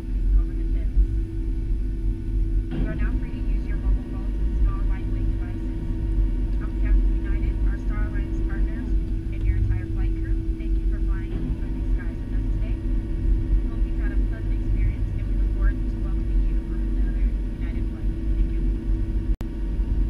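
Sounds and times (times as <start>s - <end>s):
aircraft engine rumble: 0.0s - 20.0s
constant hum: 0.0s - 20.0s.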